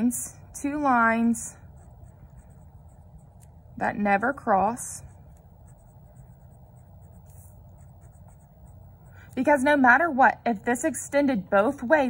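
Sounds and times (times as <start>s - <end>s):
steady low hum: 0.0s - 12.0s
pen scratching on paper: 1.6s - 3.5s, 4.9s - 9.1s.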